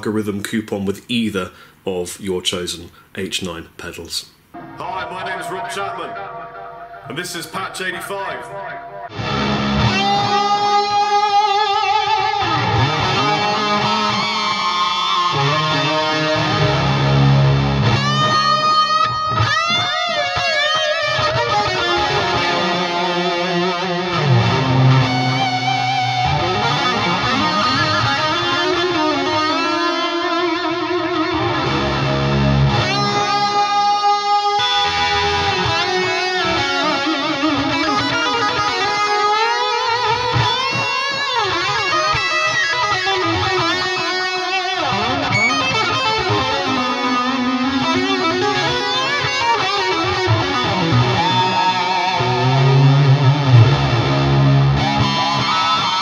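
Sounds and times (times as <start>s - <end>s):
electric guitar with pitch glides: 4.6s - 7.1s, 8.4s - 56.0s.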